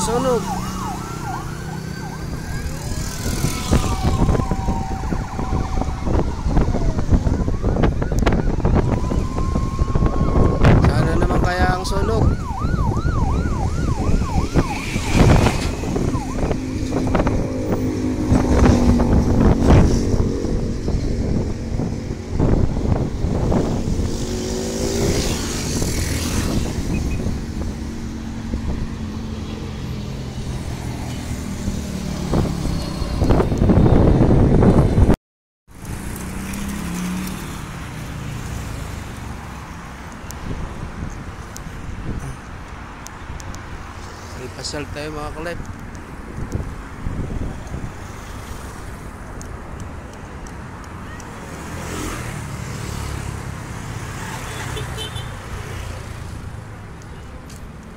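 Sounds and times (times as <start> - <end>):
passing vehicles: 0.0 - 57.9.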